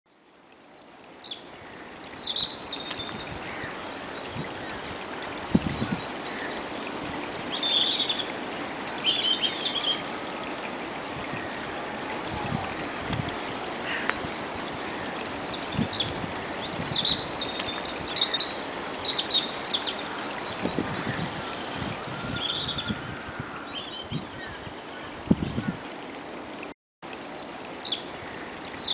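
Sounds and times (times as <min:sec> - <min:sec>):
stream trickling: 0:00.1 - 0:28.9
small songbirds singing: 0:00.7 - 0:10.2, 0:11.0 - 0:25.8, 0:27.3 - 0:28.9.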